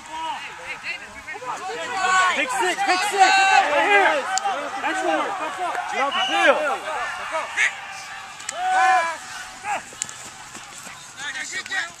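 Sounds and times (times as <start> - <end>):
voices shouting across a field: 0.0 - 12.0.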